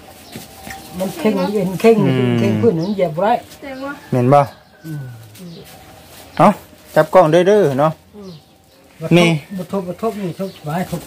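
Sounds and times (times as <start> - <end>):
person speaking: 1.9 - 2.9.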